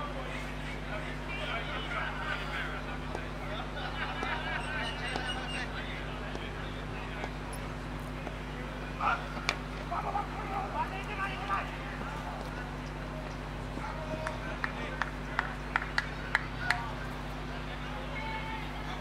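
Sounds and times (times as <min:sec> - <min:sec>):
distant voices calling: 0:00.0 - 0:19.0
steady low hum: 0:00.0 - 0:19.0
hand claps: 0:05.0 - 0:05.4, 0:09.4 - 0:09.6, 0:14.0 - 0:16.9.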